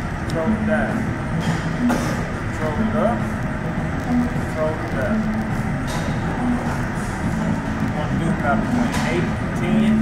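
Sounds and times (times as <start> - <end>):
music: 0.0 - 10.0
steady low rumble: 0.0 - 10.0.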